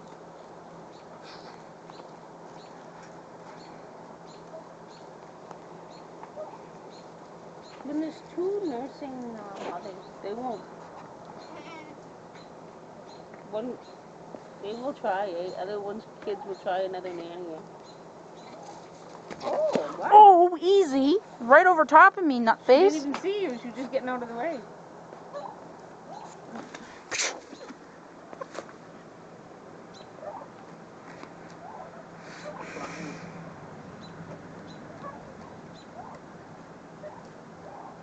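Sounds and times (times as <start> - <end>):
goat kid bleating: 11.4 - 12.0.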